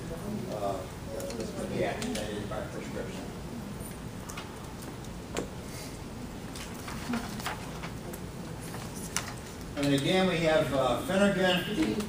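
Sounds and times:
low room hiss: 0.0s - 12.0s.

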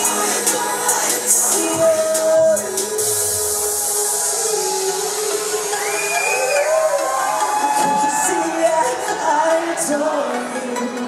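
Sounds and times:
live pop song over pa: 0.0s - 11.0s
crowd cheering: 1.0s - 11.0s.

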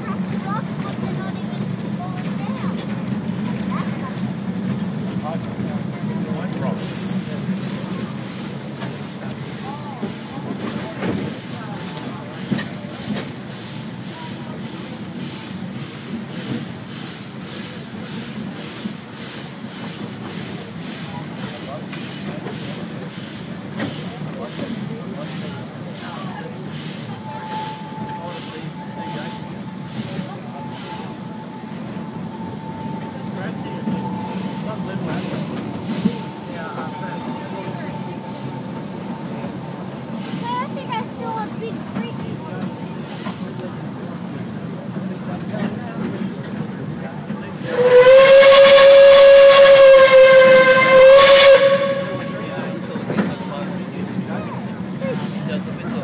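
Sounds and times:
faint passengers' voices: 0.0s - 56.0s
train carriage rumbling on track: 0.0s - 56.0s.

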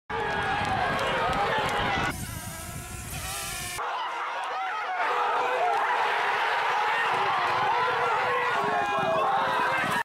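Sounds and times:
hiss: 2.1s - 3.8s.

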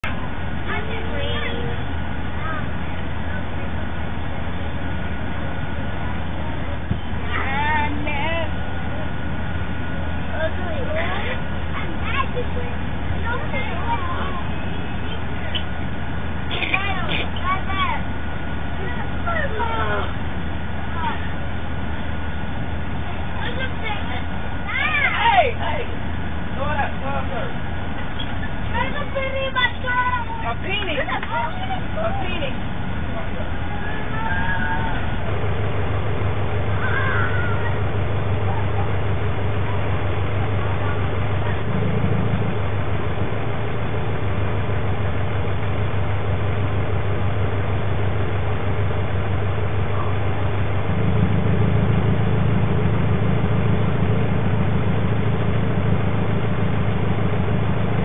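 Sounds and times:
children calling and chattering: 0.0s - 55.0s
steady low hum: 0.0s - 58.0s.

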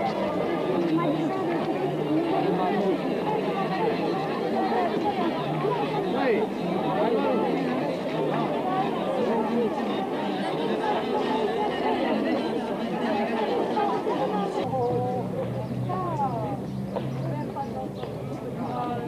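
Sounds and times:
market crowd chattering: 0.0s - 19.0s.

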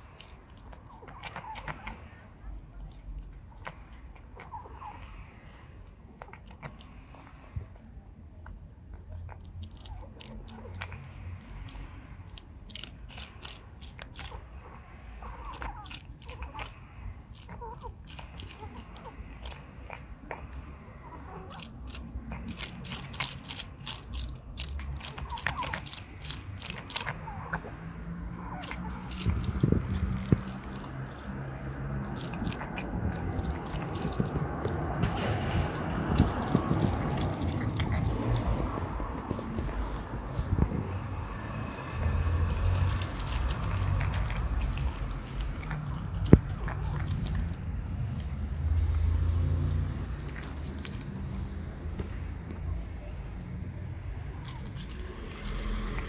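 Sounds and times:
cat chewing wet food: 0.0s - 38.8s, 41.6s - 52.1s.

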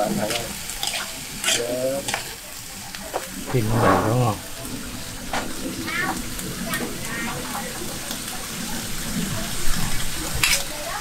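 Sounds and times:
fish sizzling in a wok: 0.0s - 11.0s
metal spatula scraping wok: 0.2s - 2.4s, 3.5s - 4.5s, 10.3s - 10.8s.

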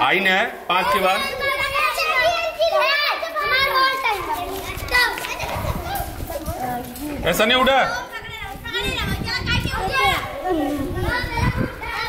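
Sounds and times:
children shouting: 0.8s - 7.0s, 7.6s - 12.0s.

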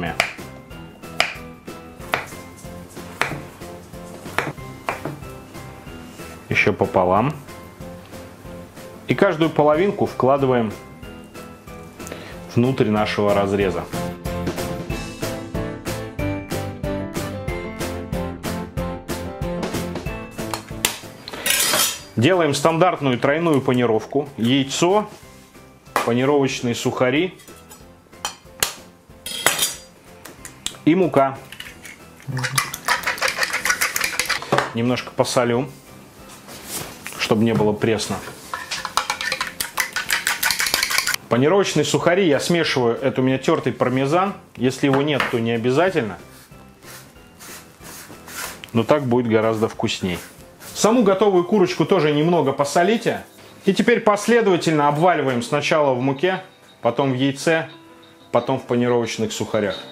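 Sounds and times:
background music: 0.0s - 59.9s
knife knocking on wooden board: 4.3s - 5.2s
eggshell cracking on bowl rim: 31.5s - 34.5s, 38.7s - 41.2s.

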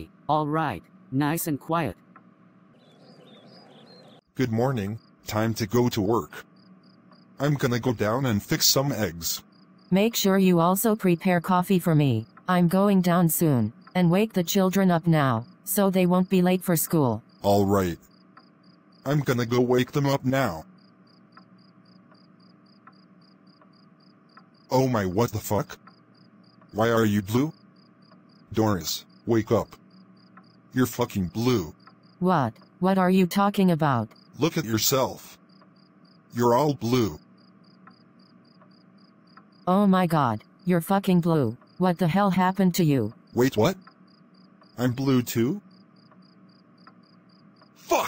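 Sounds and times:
low hum: 0.0s - 48.0s
crickets chirping: 2.0s - 48.0s
faint bird chirps: 2.4s - 10.4s.

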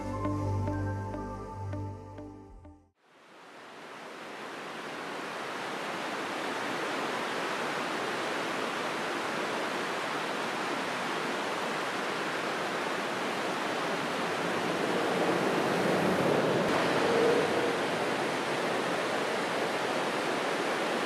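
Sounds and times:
river rapids rushing: 4.2s - 21.0s.

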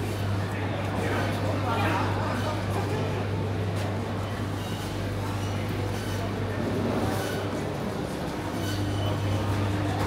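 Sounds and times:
faint chatter of shoppers: 0.0s - 10.0s.

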